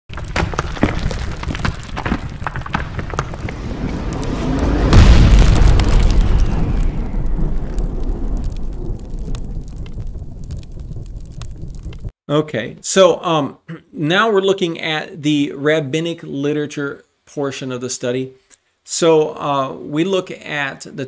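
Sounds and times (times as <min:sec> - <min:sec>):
fiery crackling: 0:00.1 - 0:12.1
deep boom: 0:00.3 - 0:12.1
low rumble: 0:02.7 - 0:12.1.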